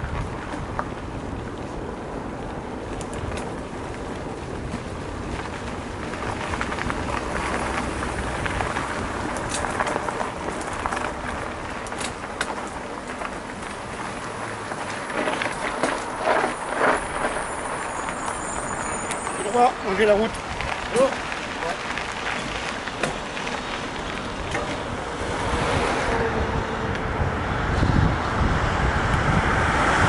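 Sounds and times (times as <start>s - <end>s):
wind over microphone: 0.0s - 12.4s, 22.2s - 30.0s
bike clicking and rattling: 0.0s - 26.2s
bike tyres rumbling on dirt: 0.0s - 30.0s.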